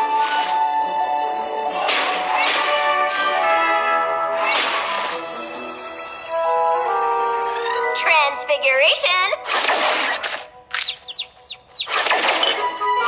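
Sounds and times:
high chirps: 5.5s - 7.9s, 10.8s - 12.1s.

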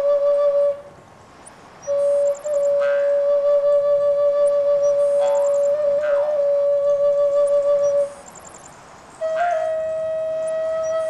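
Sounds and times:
flute holding long notes: 0.0s - 1.0s, 1.8s - 8.3s, 9.2s - 11.0s
faint high chirps: 1.4s - 3.1s, 4.4s - 6.3s, 7.2s - 9.8s.

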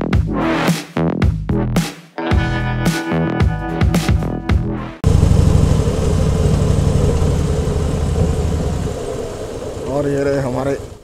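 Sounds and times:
motorcycle engine throbbing: 5.0s - 11.0s.

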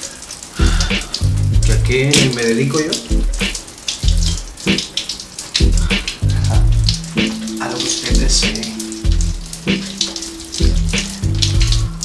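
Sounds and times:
shower spray hissing: 0.0s - 12.0s
background music with pulsing bass: 0.6s - 2.0s, 3.1s - 4.8s, 5.6s - 12.0s.

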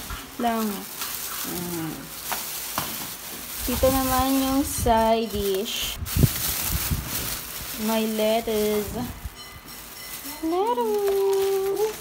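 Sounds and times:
plastic bag rustling and crinkling: 0.0s - 12.0s.

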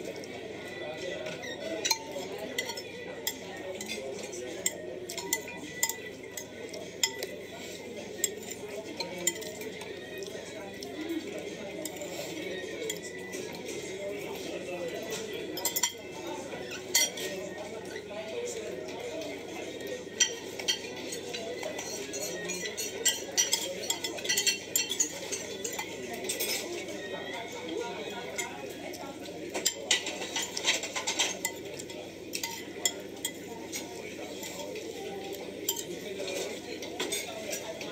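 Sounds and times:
murmur of voices: 0.0s - 37.9s
utensils clinking against a dish: 1.0s - 37.9s.

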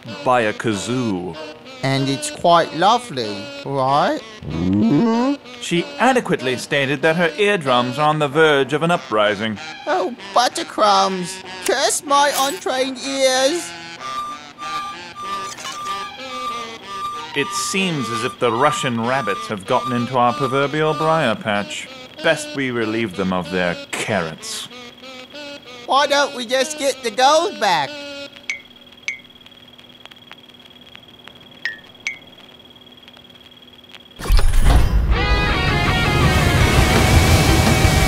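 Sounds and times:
music: 0.0s - 23.9s, 34.7s - 38.0s
faint electronic hum: 0.0s - 34.2s
sharp high chirps: 13.6s - 21.7s, 28.3s - 30.4s, 31.2s - 34.4s
electronic alert beeping: 14.0s - 21.1s, 28.5s - 29.4s, 31.6s - 32.4s.

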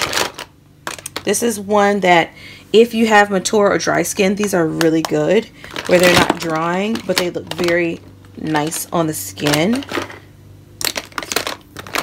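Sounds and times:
plastic cases clacking and rattling: 0.0s - 1.2s, 5.0s - 10.2s, 10.8s - 12.0s.

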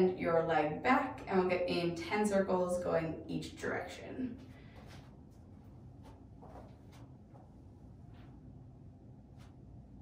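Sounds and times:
taps and rustles on yoga mat: 6.0s - 7.5s.

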